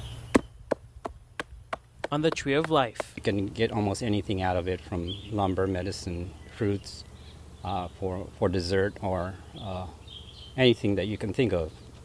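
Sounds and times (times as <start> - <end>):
hand knocking on palm trunk: 0.4 - 3.2.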